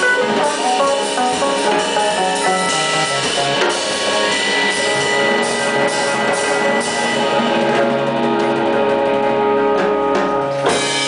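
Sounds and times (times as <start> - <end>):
drum hits: 0.0 - 11.0
electric guitar: 0.0 - 11.0
organ chords: 0.0 - 11.0.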